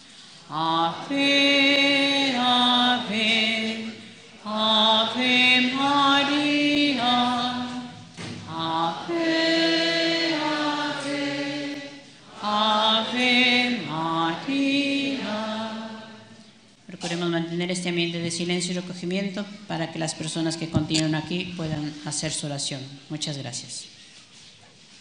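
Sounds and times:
hymn sung slowly: 0:00.0 - 0:16.7.

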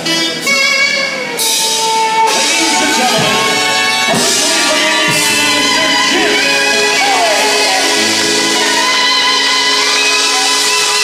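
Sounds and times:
drum kit: 0:00.0 - 0:11.0
horns: 0:00.0 - 0:11.0
saxophone: 0:00.0 - 0:11.0.

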